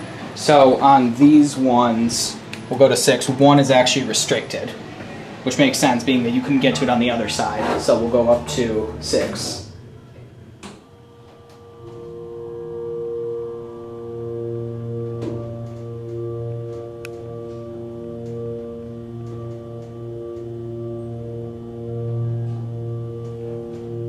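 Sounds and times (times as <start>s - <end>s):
hydraulic pump motor hum: 4.8s - 24.0s.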